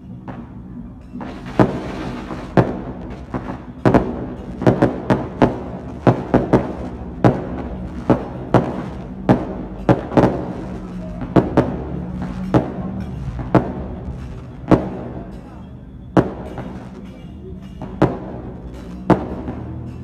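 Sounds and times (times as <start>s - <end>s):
firecrackers banging: 0.0s - 20.0s.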